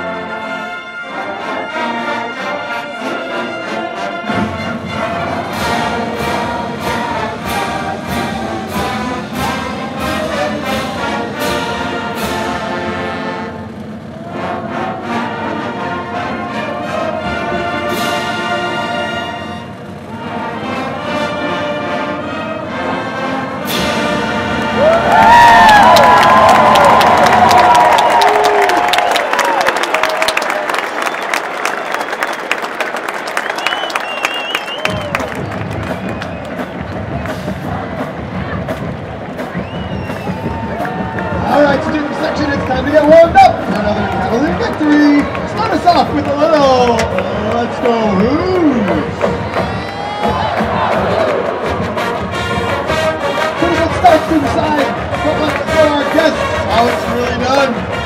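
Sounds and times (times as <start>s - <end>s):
marching band playing brass: 0.0s - 30.2s, 32.0s - 58.0s
crowd cheering and applauding: 24.1s - 58.0s.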